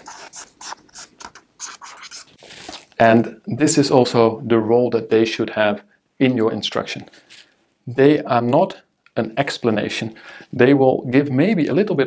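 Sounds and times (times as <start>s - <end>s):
marker writing on whiteboard: 0.0s - 2.4s.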